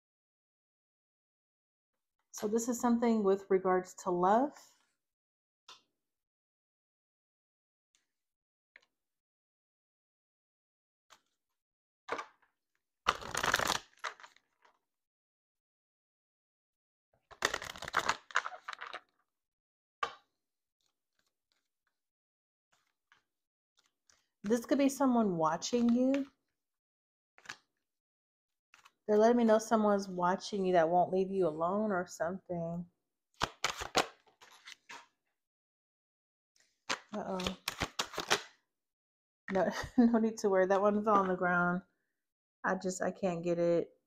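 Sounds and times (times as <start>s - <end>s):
cards being shuffled: 12.1s - 12.4s, 13.1s - 14.6s, 17.3s - 19.1s, 33.4s - 35.1s, 36.9s - 38.5s.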